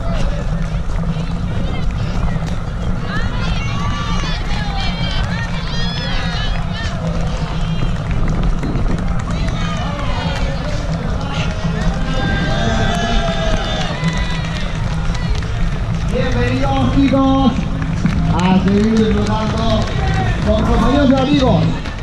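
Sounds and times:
heavy rumble of running movement: 0.0 - 22.0
spectators shouting: 2.0 - 8.1, 9.1 - 21.6
voice over loudspeaker: 16.0 - 22.0.

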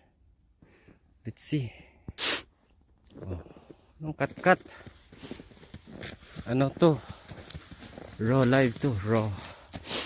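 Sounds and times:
person sneezing: 2.2 - 2.5.

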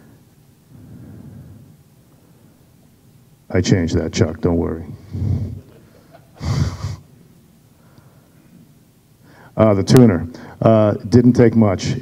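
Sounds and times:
man breathy laugh: 5.4 - 7.0.

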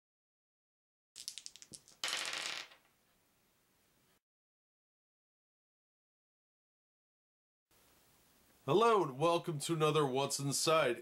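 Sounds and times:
dice clattering on wooden table: 1.2 - 2.9.

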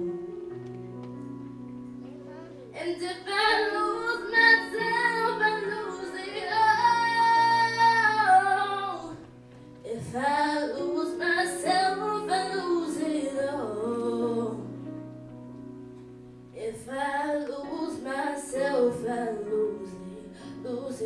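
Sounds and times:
soft instrumental accompaniment: 0.0 - 21.0
girl singing into microphone: 2.0 - 14.9, 16.6 - 21.0.

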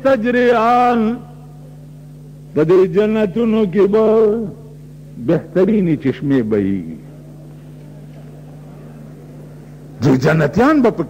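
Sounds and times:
low electrical hum with hiss: 0.0 - 11.0.

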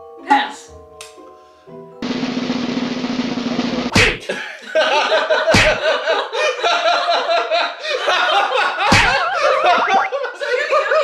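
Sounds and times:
snare drum roll: 2.0 - 4.0
sharp snare drum hit: 2.0 - 4.2.

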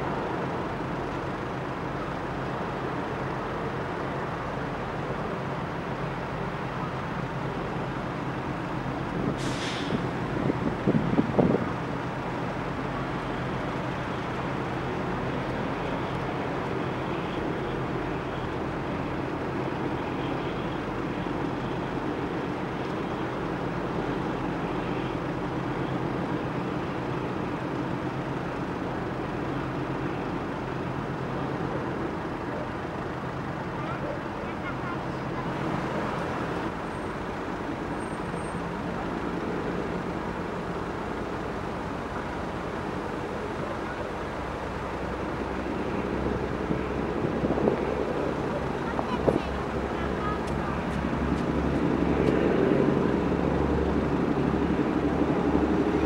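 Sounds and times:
distant road traffic: 0.0 - 56.0
harbour noise: 0.0 - 56.0
faint voices: 32.2 - 36.3, 45.6 - 52.2.

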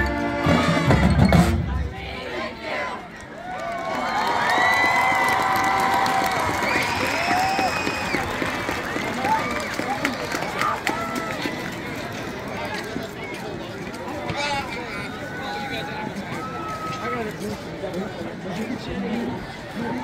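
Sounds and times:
marching band music: 0.0 - 3.0
stadium crowd cheering: 2.0 - 17.5.

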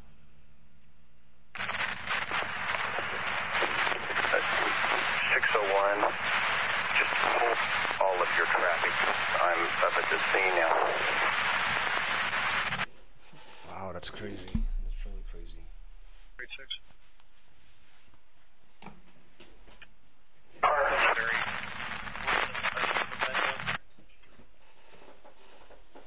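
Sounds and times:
faint low hum: 0.0 - 23.9
radio static: 1.6 - 12.9, 14.5 - 16.9, 20.5 - 23.8
garbled radio voice: 2.8 - 12.9, 20.6 - 23.8.

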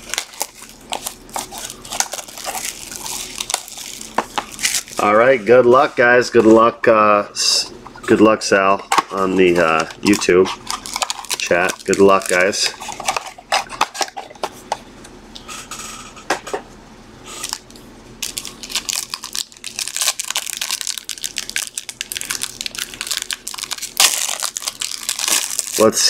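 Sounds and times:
foil wrapper crinkling and tearing: 0.0 - 6.4, 9.0 - 14.4, 17.3 - 26.0.

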